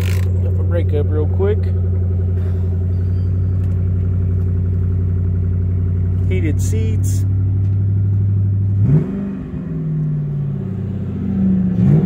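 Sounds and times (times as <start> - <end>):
car engine idling: 0.0 - 11.8.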